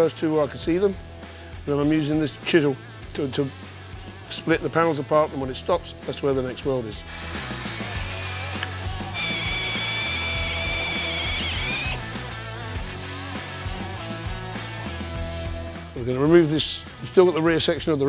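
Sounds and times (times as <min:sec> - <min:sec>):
background music: 0:00.0 - 0:18.0
drill bit squealing in steel: 0:07.1 - 0:12.0.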